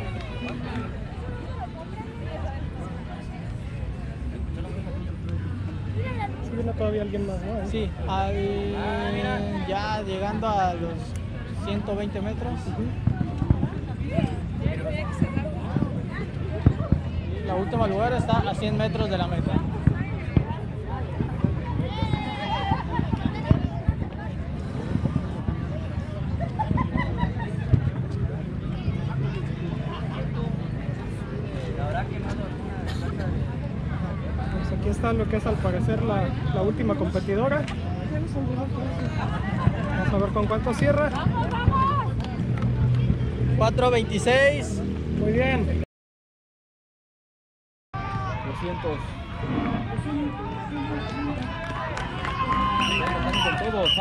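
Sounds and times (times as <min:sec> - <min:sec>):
people chattering: 0:00.0 - 0:45.8, 0:48.0 - 0:54.0.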